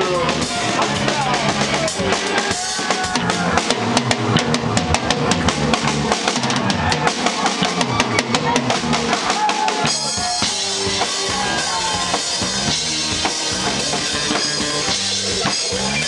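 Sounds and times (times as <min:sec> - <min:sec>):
bass line: 0:00.0 - 0:16.0
rock drum kit beat: 0:00.0 - 0:16.0.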